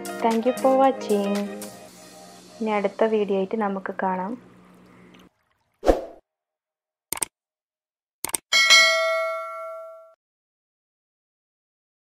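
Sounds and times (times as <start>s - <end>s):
notification bell ding: 8.6s - 10.2s.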